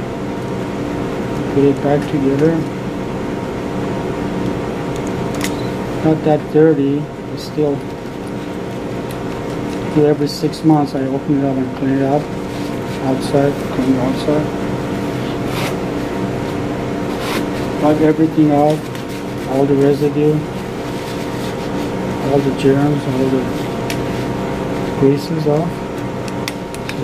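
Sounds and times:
mechanical hum: 0.0s - 27.0s.

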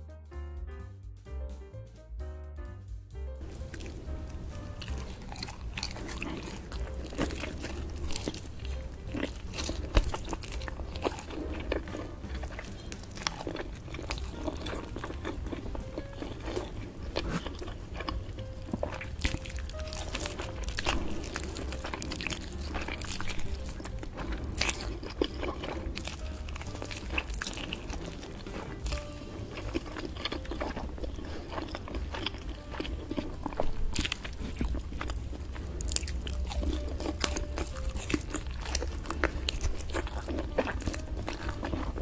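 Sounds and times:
soft background music: 0.0s - 42.0s
chewing with wet clicks: 3.4s - 42.0s
meat torn from bone: 4.8s - 42.0s.

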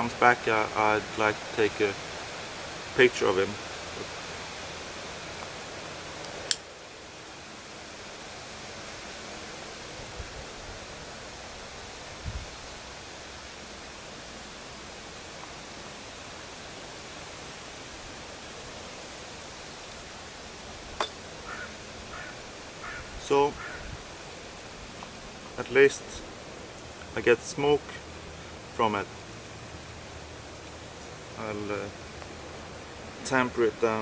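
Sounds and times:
outdoor background hiss: 0.0s - 34.0s.

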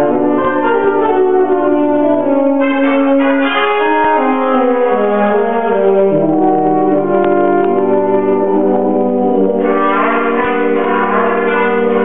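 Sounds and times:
saxophone and brass chords: 0.0s - 12.0s.

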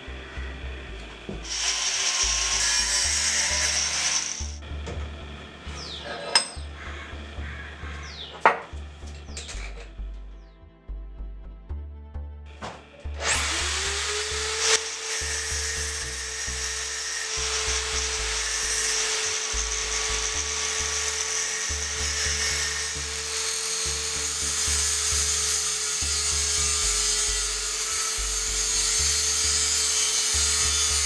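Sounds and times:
grinder disc grinding steel: 1.1s - 4.6s, 13.2s - 31.0s
power tool motor running: 1.4s - 4.6s, 13.2s - 31.0s
background music with low beat: 4.4s - 6.0s, 6.6s - 14.5s.

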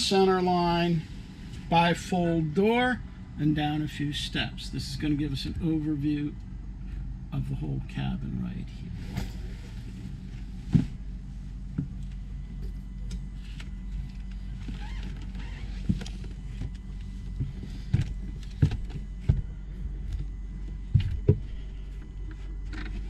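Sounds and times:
steady low hum: 0.0s - 23.0s
sharp knocks and bumps: 15.8s - 19.5s, 20.1s - 21.5s.

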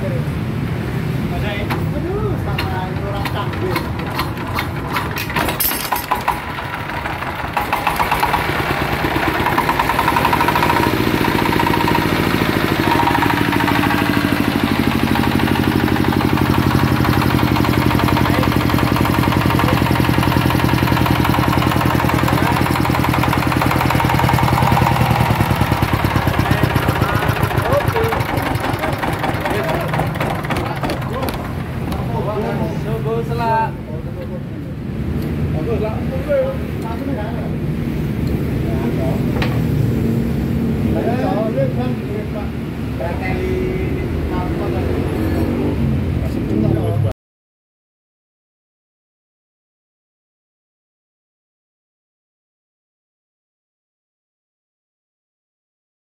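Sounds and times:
diesel engine running: 0.5s - 33.6s
diesel engine clattering: 0.6s - 35.4s.

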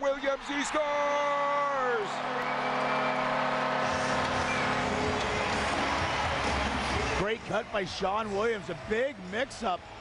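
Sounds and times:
crowd cheering: 0.0s - 10.0s
low goal horn: 2.4s - 6.2s.

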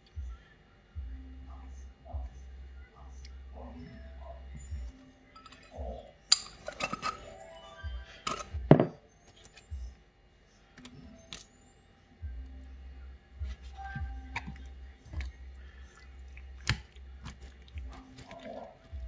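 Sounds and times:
bottle tapping on wood: 8.3s - 9.0s.

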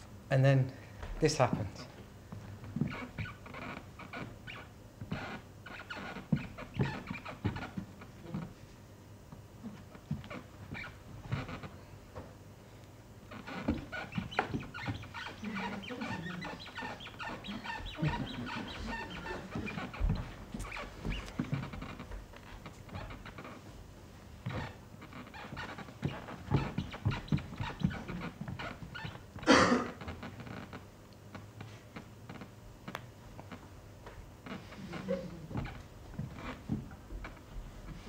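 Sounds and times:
thumps and scuffs of feet: 17.6s - 23.6s.

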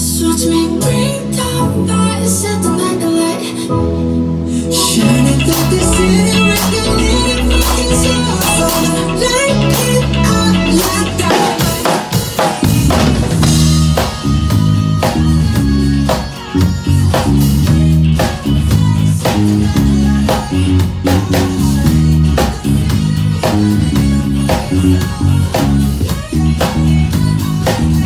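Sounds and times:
electric bass line: 4.4s - 28.0s
drum kit playing: 4.7s - 28.0s.

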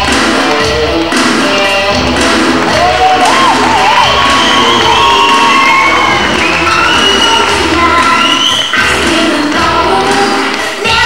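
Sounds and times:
audience cheering and shouting: 0.0s - 10.3s
loud music: 0.0s - 11.0s
high wavering shouts: 2.7s - 9.0s.

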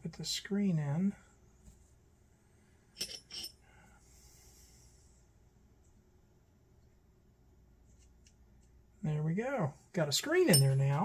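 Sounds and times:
light clicks of small parts and tools: 7.9s - 8.8s.

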